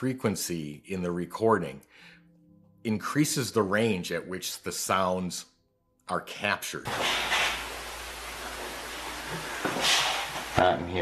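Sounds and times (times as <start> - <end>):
recording hiss: 6.9 - 11.0.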